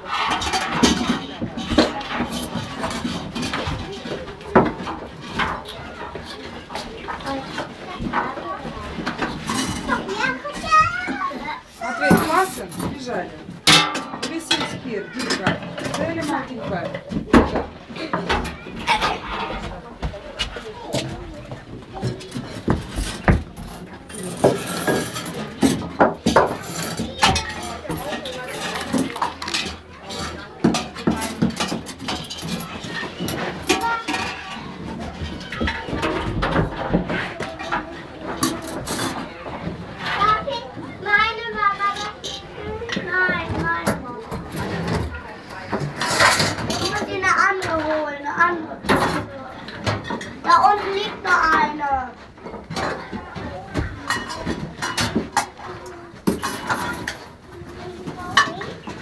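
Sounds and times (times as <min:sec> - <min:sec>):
metal dishes clinking: 0:00.0 - 0:06.2, 0:12.0 - 0:19.8, 0:22.0 - 0:36.9, 0:53.8 - 0:57.3
children's voices murmuring: 0:00.0 - 0:59.0.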